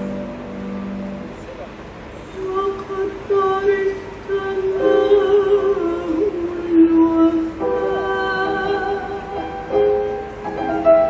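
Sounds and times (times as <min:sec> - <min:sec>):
woman singing: 0:02.2 - 0:11.0
instrumental accompaniment: 0:07.6 - 0:11.0.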